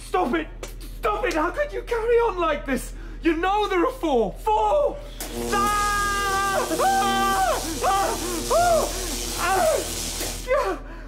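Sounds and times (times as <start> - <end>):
man crying out in pain: 5.6 - 11.0.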